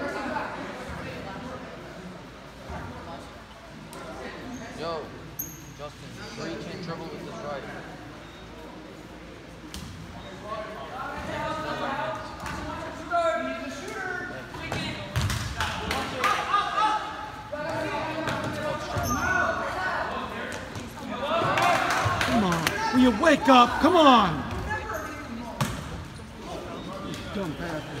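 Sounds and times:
voices calling out: 15.8s - 28.0s.

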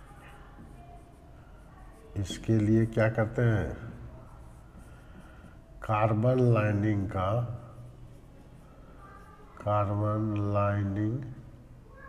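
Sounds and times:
marker pen writing on whiteboard: 0.0s - 11.1s
man talking: 2.2s - 3.9s, 5.8s - 7.8s, 9.6s - 11.4s.

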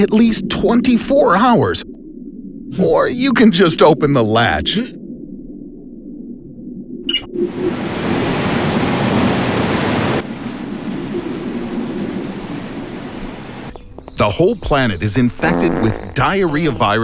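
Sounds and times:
low rumble: 0.0s - 7.7s
water rushing: 7.1s - 13.9s.

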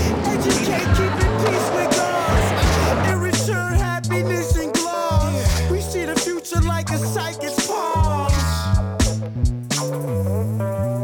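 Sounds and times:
hip-hop music with beat and bass: 0.0s - 11.0s.

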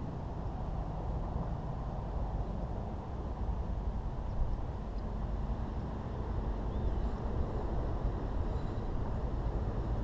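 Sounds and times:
wind buffeting microphone: 0.0s - 10.0s
faint high chirp: 6.7s - 7.2s.

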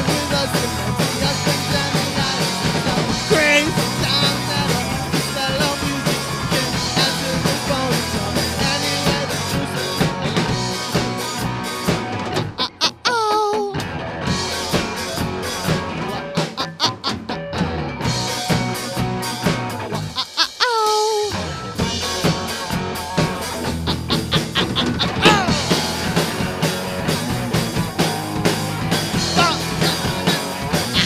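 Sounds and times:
electric guitar: 0.0s - 31.0s
person singing: 3.3s - 3.8s, 12.6s - 13.8s, 20.1s - 21.4s, 23.9s - 25.6s
electric bass: 21.3s - 31.0s.

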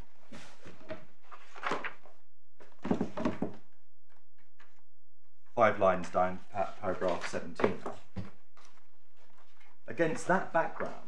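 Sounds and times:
papers rustling: 0.3s - 3.5s, 6.6s - 11.0s.

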